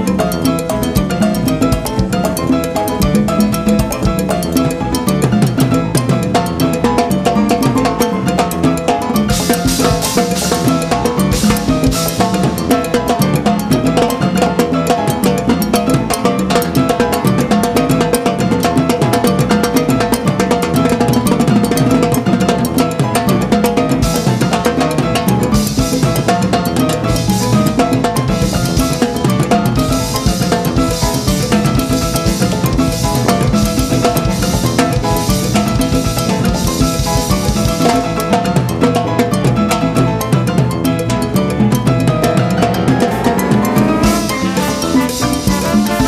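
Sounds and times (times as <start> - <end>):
bass drum: 0.0 - 14.8, 15.4 - 46.0
drum solo with rapid strokes: 8.6 - 14.6, 17.0 - 39.0, 42.0 - 46.0.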